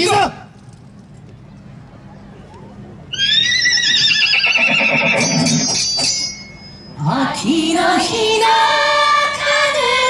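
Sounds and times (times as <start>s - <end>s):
horse whinny over loudspeakers: 3.2s - 5.6s
shimmering bell-like tones: 5.2s - 7.2s.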